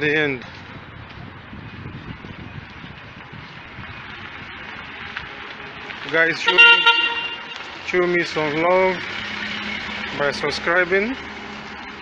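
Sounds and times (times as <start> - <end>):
street traffic hiss and rumble: 0.0 - 12.0.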